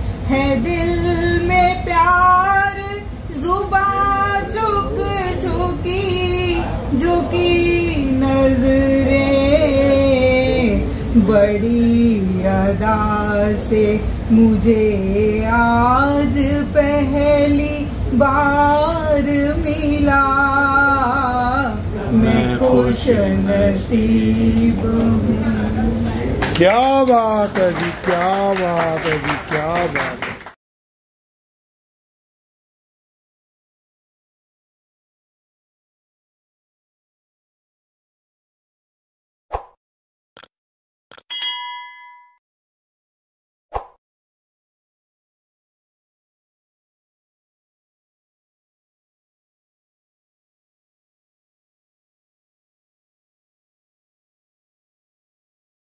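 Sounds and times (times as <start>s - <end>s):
woman singing unaccompanied: 0.3s - 26.1s
click sound effects: 41.1s - 41.4s
notification bell ding: 41.3s - 42.4s.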